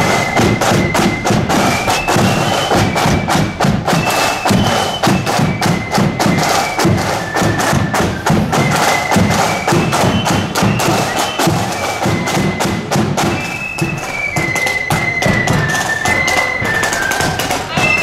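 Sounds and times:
high flute melody: 0:00.0 - 0:18.0
loud steady drumbeats: 0:00.0 - 0:18.0.

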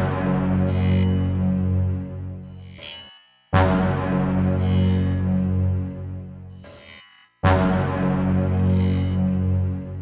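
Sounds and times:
deep steady drone: 0:00.0 - 0:02.8, 0:03.6 - 0:06.7, 0:07.4 - 0:10.0.

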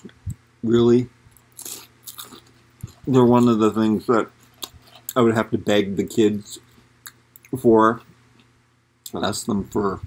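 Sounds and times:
crunchy chewing: 0:01.3 - 0:05.2.

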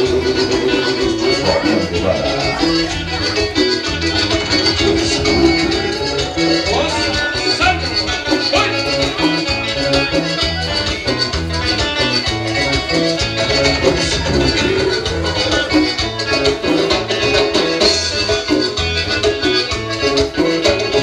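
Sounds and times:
latin dance music: 0:00.0 - 0:21.0.

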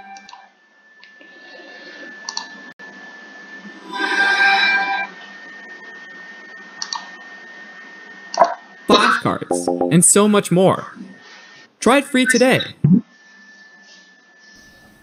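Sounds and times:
faint high whine: 0:00.0 - 0:15.0.

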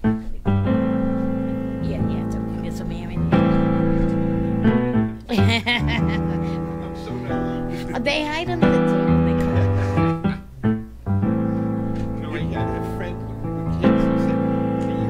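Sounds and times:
sustained piano chords: 0:00.0 - 0:15.0.

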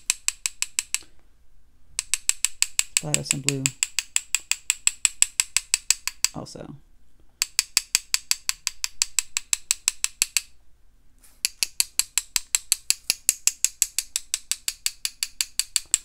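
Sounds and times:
paintbrush tapping against brush: 0:02.0 - 0:06.4, 0:11.4 - 0:16.0.

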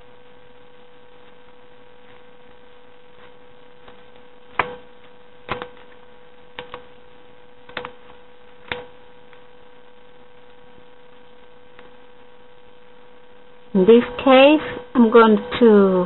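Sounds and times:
steady electrical hum: 0:00.0 - 0:16.0.

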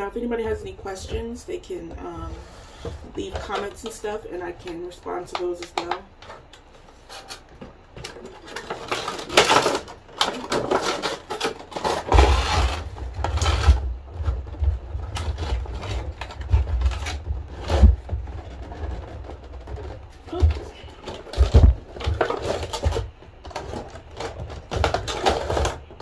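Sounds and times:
plastic and cardboard crinkling: 0:00.0 - 0:26.0.

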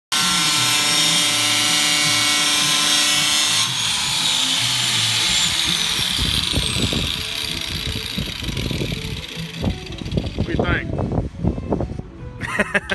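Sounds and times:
angle grinder spinning down: 0:00.1 - 0:10.6.

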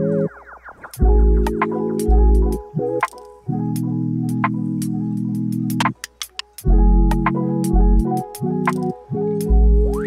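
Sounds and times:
background music with held chords: 0:00.0 - 0:10.0
light percussive clicks: 0:03.0 - 0:03.4, 0:05.8 - 0:07.4, 0:08.7 - 0:09.0
deep bass note: 0:06.7 - 0:08.0.

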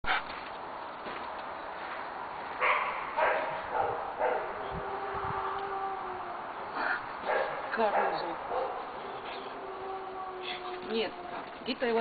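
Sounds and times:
dog whining: 0:09.0 - 0:12.0.

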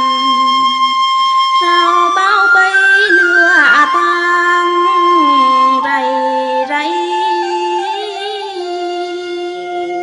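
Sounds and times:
instrumental accompaniment: 0:00.0 - 0:10.0
woman singing folk song: 0:01.6 - 0:10.0.

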